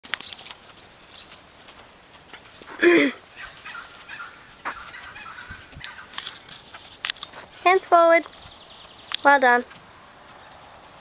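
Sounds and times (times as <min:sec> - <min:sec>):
hoof steps on sand: 0:00.1 - 0:11.0.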